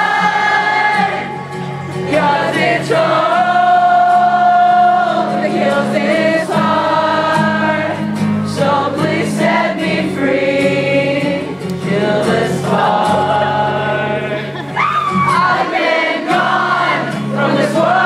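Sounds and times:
acoustic guitar chords: 0.0 - 18.0
crowd singing along: 0.0 - 18.0.

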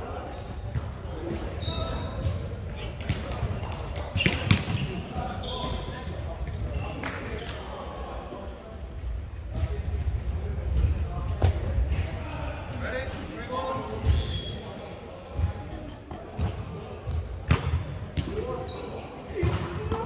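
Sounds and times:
players' voices: 0.0 - 20.0
sneaker squeaks on hardwood: 4.2 - 6.0, 14.0 - 16.5.

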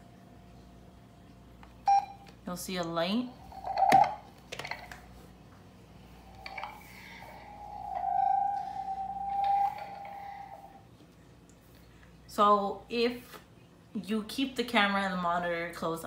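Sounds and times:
feedback whistling tone: 6.3 - 10.8.

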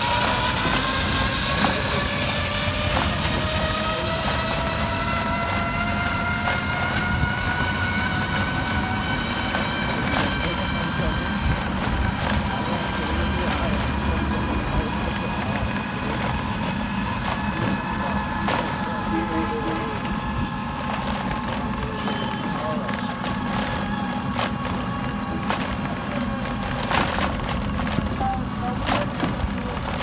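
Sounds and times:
faint voices: 0.0 - 30.0
vehicle engine hum with whine: 0.0 - 30.0.

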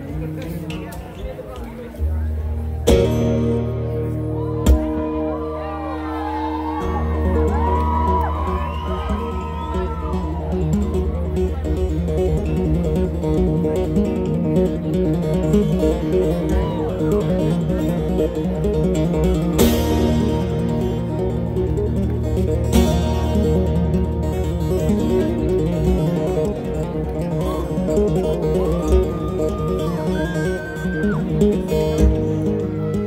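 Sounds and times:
low bass notes: 0.0 - 33.0
plucked acoustic guitar: 0.0 - 33.0.

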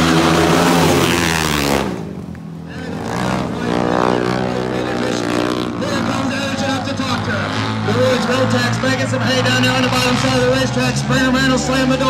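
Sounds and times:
racing motorcycle engines: 0.0 - 12.0.

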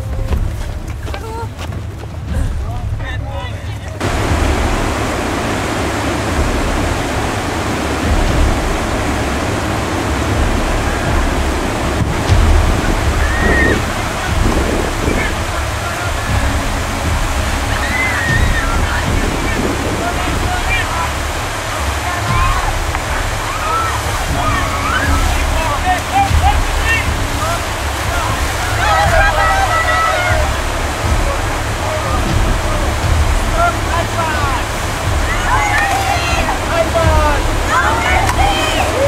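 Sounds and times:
whitewater rapids rushing: 0.0 - 39.0
people shouting and whooping: 10.6 - 39.0.

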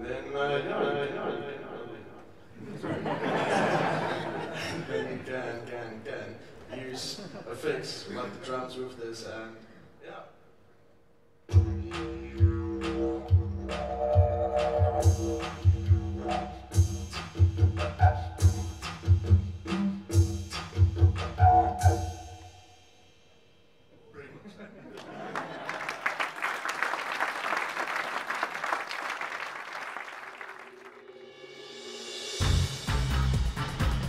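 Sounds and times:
didgeridoo drone: 11.5 - 17.1
electronic drum beat: 11.5 - 22.1, 32.4 - 34.0
audience applause: 25.0 - 31.0.

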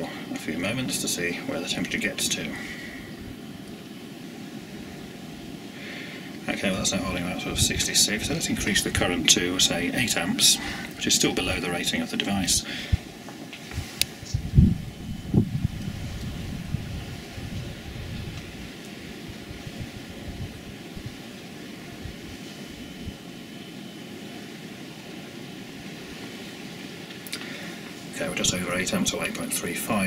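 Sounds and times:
wind buffeting microphone: 6.5 - 11.6, 12.5 - 23.2.

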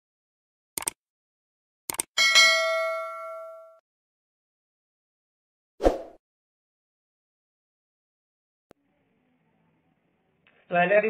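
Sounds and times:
quick clicks: 0.8 - 1.0, 1.9 - 2.1
bell chime: 2.2 - 3.8.

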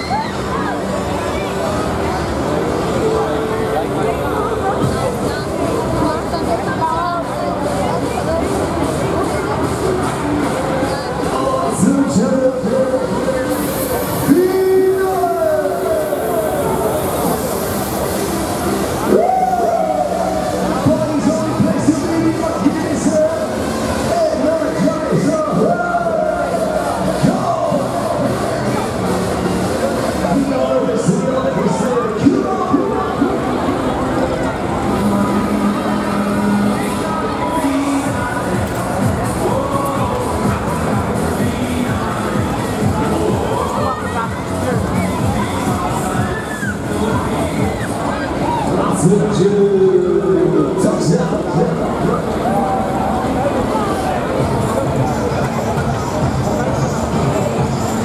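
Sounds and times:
riders screaming and shouting: 0.0 - 1.3, 12.3 - 28.9, 43.0 - 49.3
busy crowd: 0.0 - 58.0
loud rushing hiss: 13.1 - 30.6.

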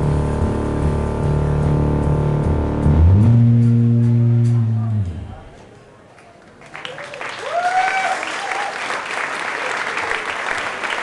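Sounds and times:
low bass notes: 0.0 - 5.6.

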